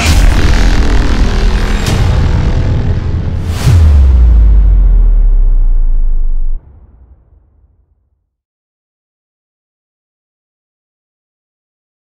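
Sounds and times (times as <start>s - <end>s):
heavy cinematic hit: 0.0s - 7.9s
deep sustained rumble: 0.2s - 7.0s.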